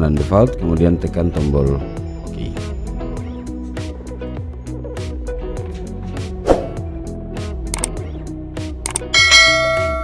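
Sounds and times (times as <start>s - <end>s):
background music with steady beat: 0.0s - 10.0s
bright bell chime: 9.1s - 10.0s.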